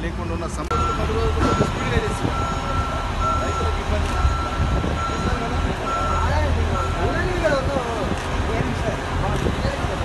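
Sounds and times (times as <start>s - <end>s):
diesel engine rumble: 0.0s - 10.0s
men talking: 0.0s - 10.0s
reversing alarm beeping: 0.7s - 7.4s.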